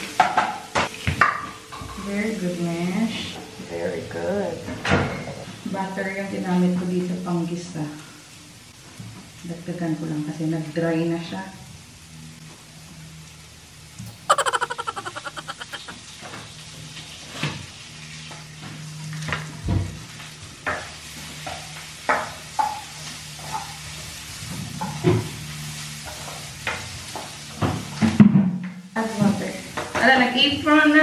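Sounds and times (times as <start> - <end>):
butter sizzling in a frying pan: 20.0 - 27.9.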